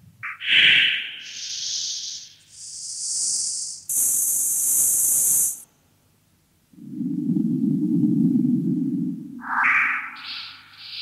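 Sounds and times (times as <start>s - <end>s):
high filtered noise hiss: 0.0s - 6.8s.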